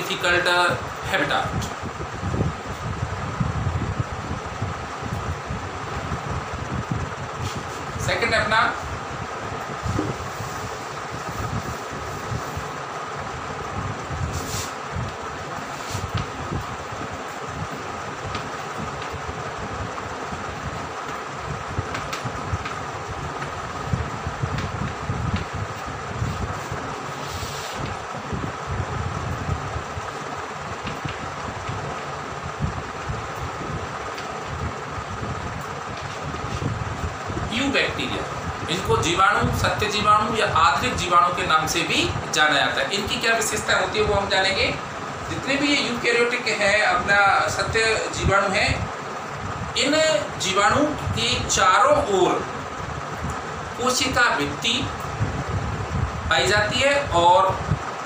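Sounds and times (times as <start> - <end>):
background hum and hiss: 0.0 - 58.0
chalk tapping and scraping: 15.6 - 16.3, 26.2 - 27.9.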